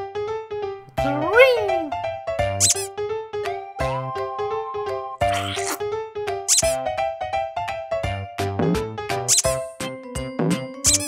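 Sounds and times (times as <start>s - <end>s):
upbeat children's music: 0.9s - 5.7s
rubber duck squeaking: 2.6s - 2.9s, 5.2s - 5.8s, 6.5s - 6.8s, 9.3s - 9.6s.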